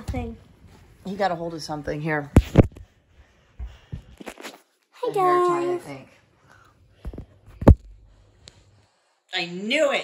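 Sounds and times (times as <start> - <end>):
footsteps: 0.0 - 5.0.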